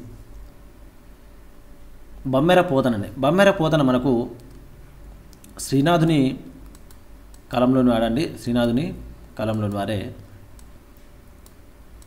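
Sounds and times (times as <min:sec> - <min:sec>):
faint clicking: 0:05.3 - 0:05.6, 0:06.6 - 0:07.5, 0:08.6 - 0:12.0
man speaking: 0:05.6 - 0:06.6, 0:07.5 - 0:10.3.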